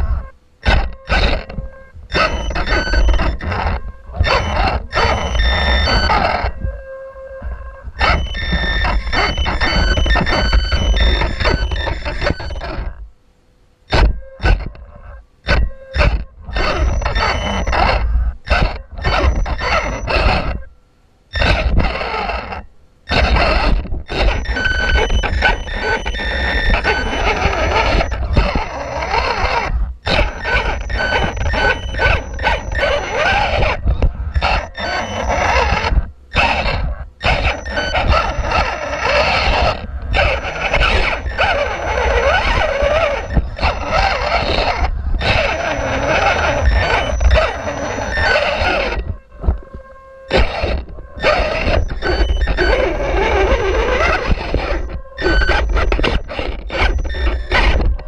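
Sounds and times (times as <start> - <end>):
electric motor and gears whining: 0.0 - 13.1, 13.9 - 20.7, 21.3 - 58.0.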